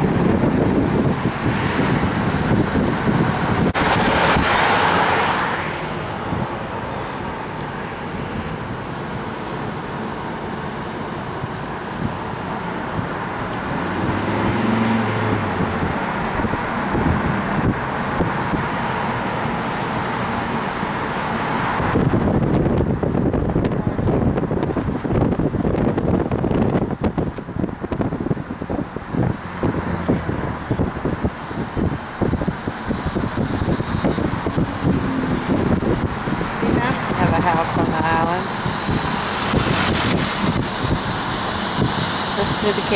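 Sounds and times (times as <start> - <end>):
wind rushing past: 0.0 - 8.7, 11.9 - 42.9
wind buffeting microphone: 0.0 - 9.0, 11.2 - 42.9
car road and tyre noise: 0.0 - 42.9.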